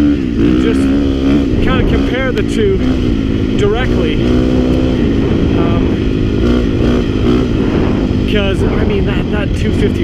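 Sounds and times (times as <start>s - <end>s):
low rumble of wind: 0.0s - 10.0s
motorcycle engine running: 0.0s - 10.0s.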